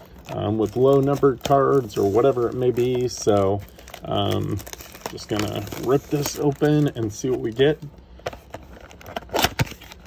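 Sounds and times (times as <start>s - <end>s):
packaging ripping: 0.0s - 7.8s, 8.4s - 10.0s
packaging crinkling and crackling: 0.0s - 10.0s.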